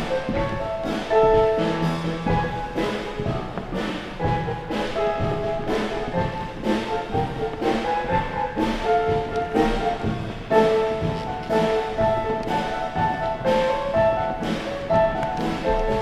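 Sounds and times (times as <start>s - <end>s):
instrumental background music: 0.0s - 16.0s.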